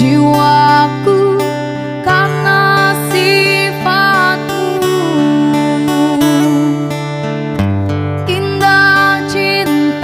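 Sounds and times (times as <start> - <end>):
woman singing: 0.0 - 7.2, 8.2 - 10.0
acoustic guitar: 0.0 - 10.0.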